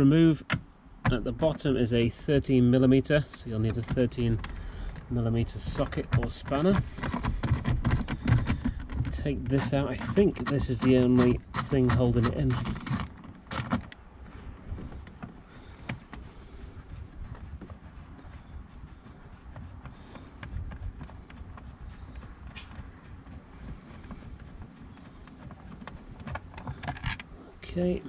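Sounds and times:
bolt rubbing and clicks: 0:03.3 - 0:14.0, 0:25.2 - 0:27.3.

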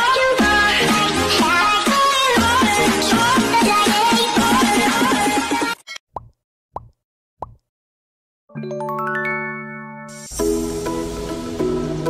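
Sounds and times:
bright ringing chord: 0:08.5 - 0:10.4.

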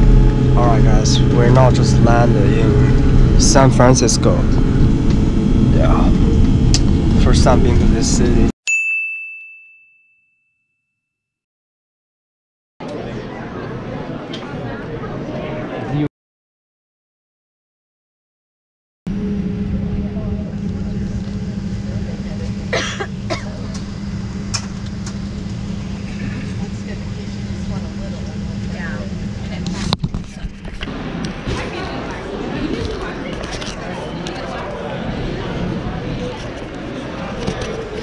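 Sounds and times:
airliner cabin drone: 0:00.0 - 0:08.5, 0:19.1 - 0:38.0
murmur of passengers' voices: 0:00.0 - 0:08.5, 0:12.8 - 0:16.1, 0:19.2 - 0:38.0
bell-like ding: 0:08.7 - 0:11.0.

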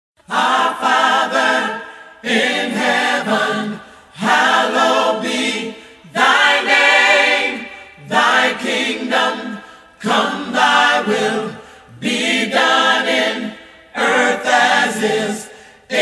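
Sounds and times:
choir singing: 0:00.2 - 0:16.0.

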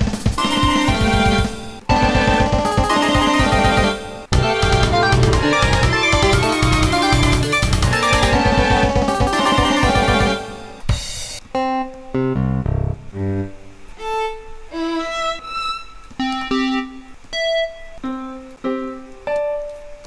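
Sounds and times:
sampled ensemble music playback: 0:00.0 - 0:19.8.

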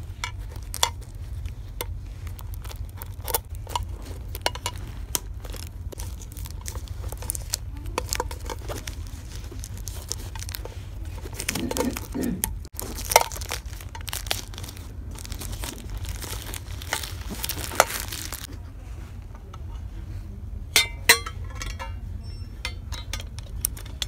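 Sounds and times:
plastic wrap crinkling: 0:00.0 - 0:18.6.

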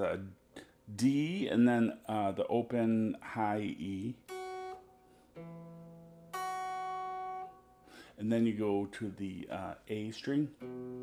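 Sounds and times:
clean electric guitar fingerpicking: 0:03.1 - 0:11.0.

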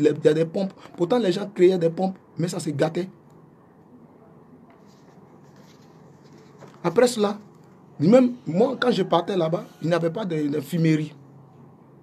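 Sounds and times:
light scratchy rustle: 0:04.7 - 0:07.7.

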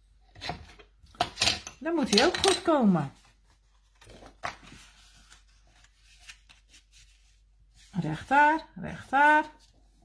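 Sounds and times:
paper rustling: 0:03.1 - 0:08.3.

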